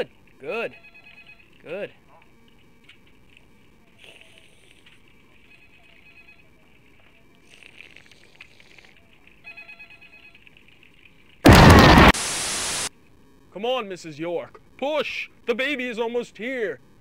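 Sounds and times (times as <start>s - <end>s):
faint hiss: 11.5s - 12.9s
loud blast of harsh noise: 11.5s - 12.9s.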